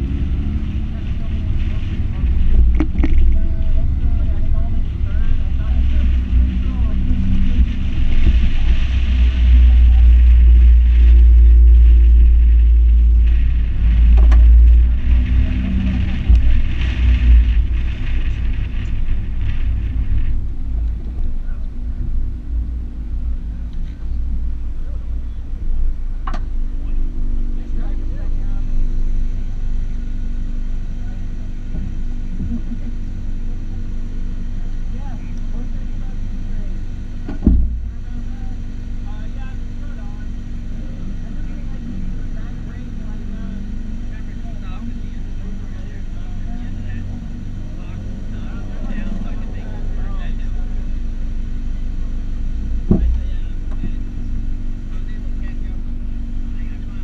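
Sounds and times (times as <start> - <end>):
heavy low thump: 0.0 - 27.4, 31.6 - 32.9, 37.1 - 38.2, 46.3 - 56.5
wind rumble on microphone: 0.0 - 39.0, 40.2 - 57.0
car engine at low revs: 0.0 - 57.0
faint voices: 0.0 - 57.0.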